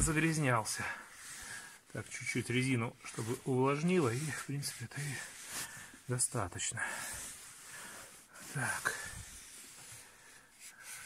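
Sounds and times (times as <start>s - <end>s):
cloth rag rubbing on rubber: 0.0s - 11.0s.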